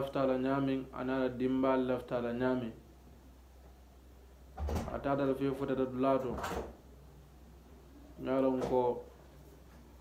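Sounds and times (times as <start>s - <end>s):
man speaking: 0.0s - 2.8s, 4.9s - 6.5s, 8.2s - 9.1s
low room hum: 0.0s - 10.0s.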